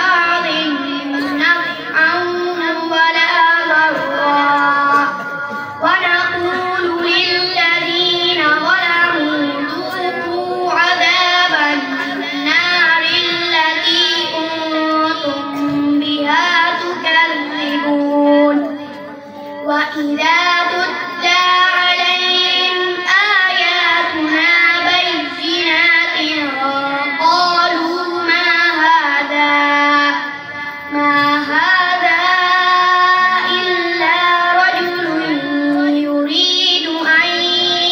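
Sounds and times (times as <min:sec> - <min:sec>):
boy reciting melodically: 0:00.0 - 0:37.9.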